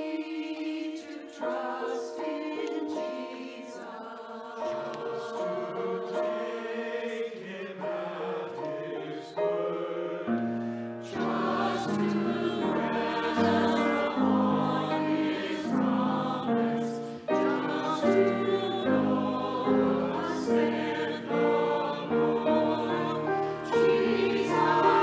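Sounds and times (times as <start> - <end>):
mixed choir singing: 0.0 - 25.0.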